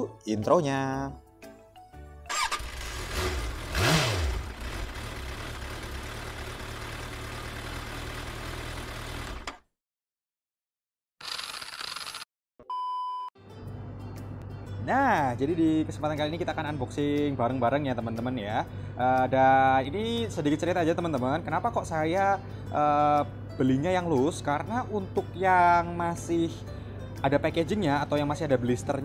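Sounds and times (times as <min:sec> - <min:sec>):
car engine starting and revving: 0:02.3 - 0:09.6
short electronic beep: 0:12.6 - 0:13.3.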